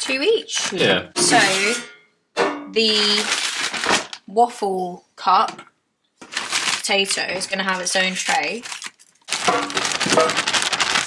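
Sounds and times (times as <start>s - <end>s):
plastic bag crinkling: 0.3s - 1.8s, 2.8s - 4.3s, 6.2s - 11.0s
frozen potatoes clattering into basket: 2.8s - 4.2s, 6.2s - 11.0s.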